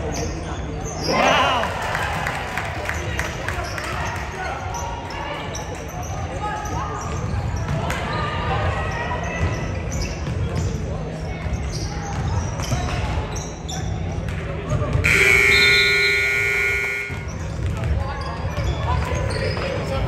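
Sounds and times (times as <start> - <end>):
scoreboard buzzer: 15.0 - 17.4
voices echoing: 15.0 - 18.0.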